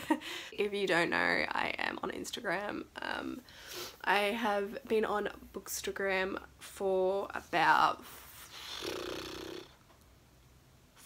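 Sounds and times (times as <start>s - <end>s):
woman breathing softly: 0.2s - 0.6s.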